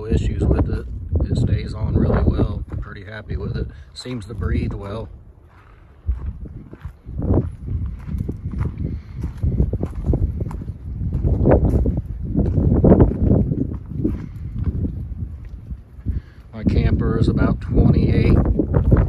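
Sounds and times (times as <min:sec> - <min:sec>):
footsteps: 0:00.0 - 0:19.0
wind buffeting microphone: 0:00.0 - 0:19.0.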